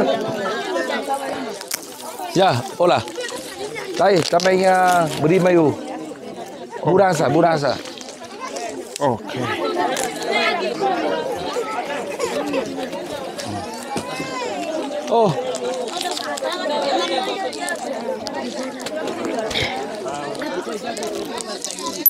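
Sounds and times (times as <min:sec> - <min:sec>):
crowd of children and adults chattering: 0:00.0 - 0:22.0.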